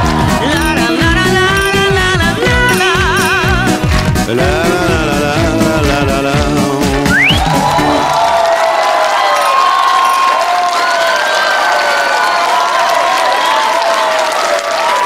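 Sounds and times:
audience applauding and cheering: 0:00.0 - 0:05.2, 0:06.6 - 0:15.0
song accompaniment: 0:00.0 - 0:08.5.

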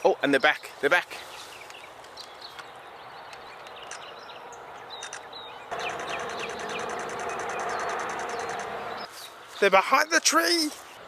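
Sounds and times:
faint birdsong: 0:00.0 - 0:11.0
rapid electronic shutter clicks: 0:05.0 - 0:08.8.

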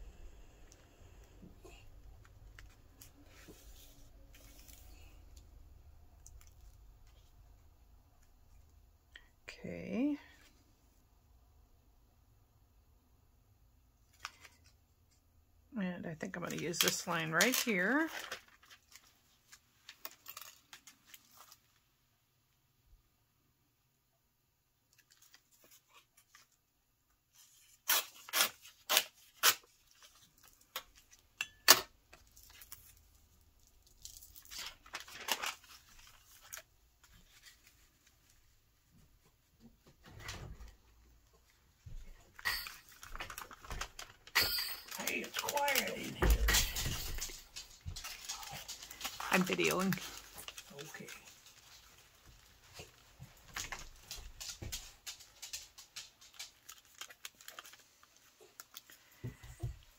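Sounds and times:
paper rustling and folding: 0:01.7 - 0:05.5, 0:16.3 - 0:21.9, 0:25.0 - 0:26.6, 0:27.3 - 0:31.4, 0:32.1 - 0:40.8, 0:41.4 - 0:59.9
paper tearing: 0:27.4 - 0:30.3.

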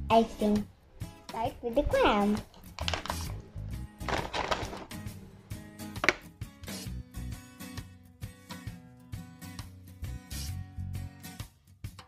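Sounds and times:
background music: 0:00.0 - 0:12.0
plastic bag crinkling: 0:02.4 - 0:05.0.

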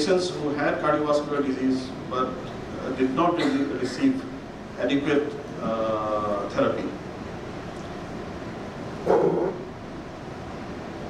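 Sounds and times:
man speaking into a microphone: 0:00.0 - 0:07.0
room hiss: 0:00.0 - 0:11.0.

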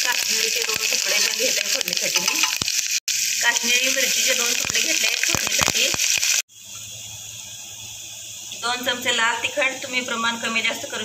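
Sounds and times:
hot oil sizzling loudly: 0:00.0 - 0:11.0.

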